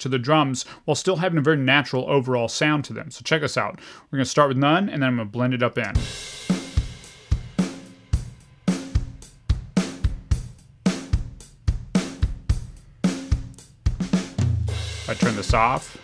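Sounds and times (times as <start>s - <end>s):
drum kit groove: 5.8s - 16.0s.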